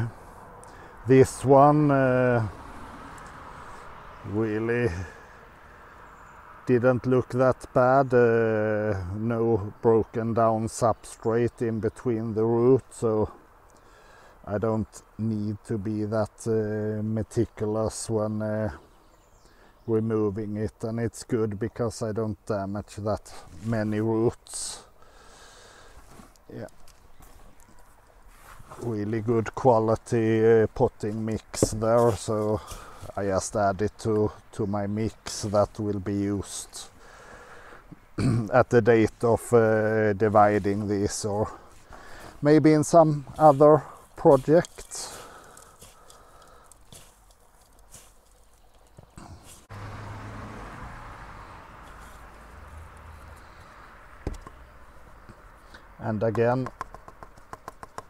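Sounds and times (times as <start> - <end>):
bark and moss rustling by hand: 26.0 - 34.4, 38.9 - 49.7, 51.8 - 53.7.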